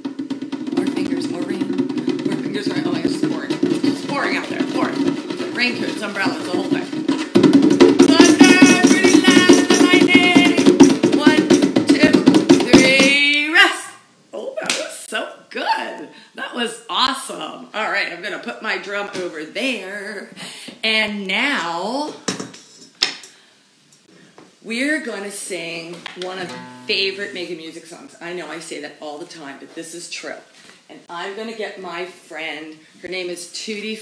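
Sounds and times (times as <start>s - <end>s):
fingers tapping on hand drum: 0.0s - 13.3s
hard hand drumming: 0.0s - 13.4s.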